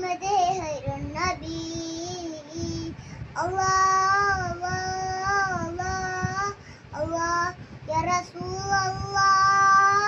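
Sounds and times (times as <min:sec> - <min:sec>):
boy singing: 0:00.0 - 0:10.0.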